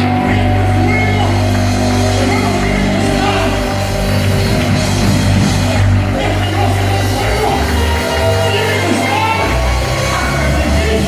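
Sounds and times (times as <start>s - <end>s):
amplified worship band music: 0.0s - 11.0s
sustained bass line: 0.0s - 11.0s.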